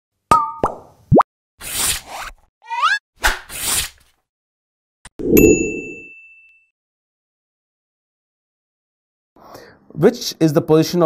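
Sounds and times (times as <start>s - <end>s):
high ringing ding: 5.4s - 6.7s.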